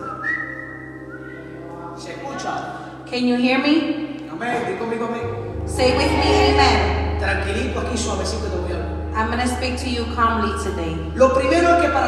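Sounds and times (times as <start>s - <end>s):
microphone feedback whistle: 0.0s - 1.6s.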